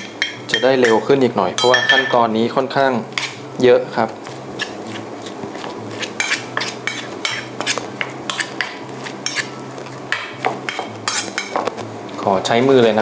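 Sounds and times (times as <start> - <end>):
metal spoon scraping steel bowl: 4.6 - 9.5, 11.0 - 11.5.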